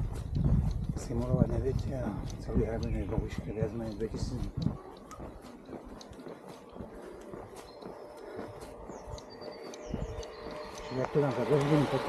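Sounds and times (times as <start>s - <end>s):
trekking poles tapping on asphalt: 0.0s - 12.0s.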